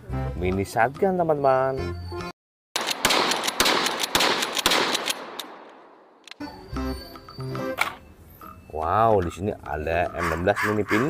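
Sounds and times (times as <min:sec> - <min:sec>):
shotgun shots: 0:02.8 - 0:06.2.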